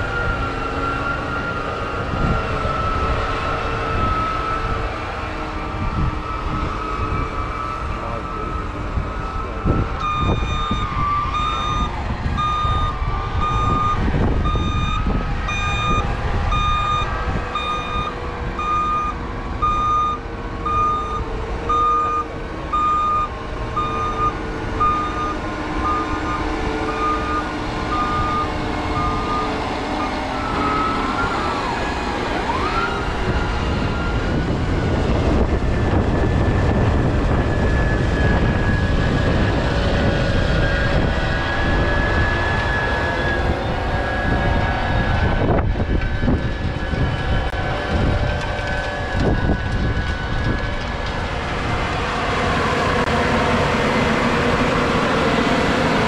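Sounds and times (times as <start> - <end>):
reversing alarm beeping: 0.0 - 4.8, 6.0 - 31.8
tractor engine under load: 0.0 - 56.0.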